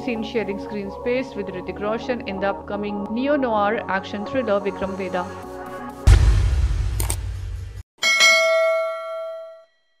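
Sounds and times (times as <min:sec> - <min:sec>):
bell ding: 0:08.0 - 0:10.0.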